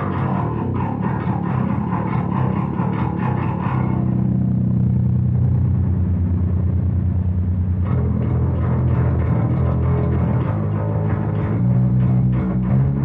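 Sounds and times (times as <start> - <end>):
electric bass notes plucked: 0.0 - 13.0.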